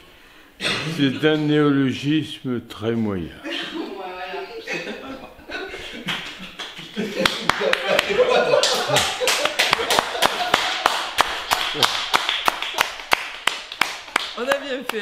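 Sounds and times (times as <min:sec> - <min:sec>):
small group clapping: 0:06.0 - 0:15.0.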